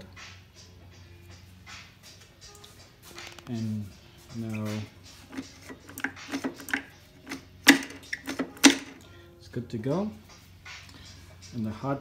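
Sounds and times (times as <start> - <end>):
metal parts clicking and tapping: 5.3 - 9.0.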